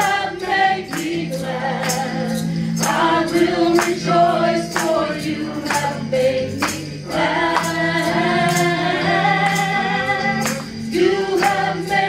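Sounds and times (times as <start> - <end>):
percussion beat: 0.0 - 12.0
women singing in harmony: 0.0 - 12.0.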